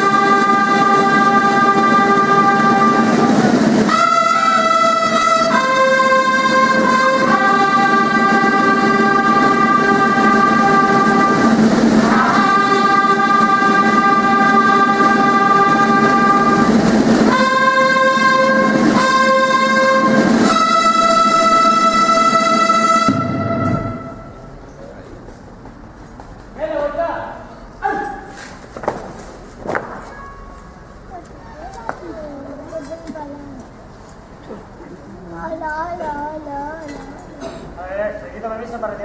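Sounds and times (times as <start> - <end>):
brass band playing slow chords: 0.0 - 24.7.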